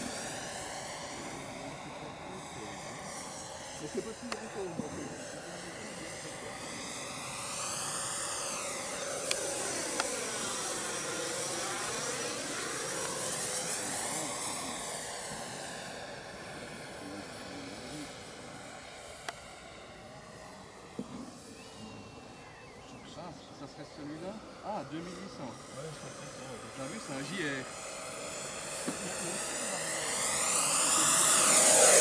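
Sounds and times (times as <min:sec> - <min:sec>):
model jet fan whining: 0:00.0 - 0:32.0.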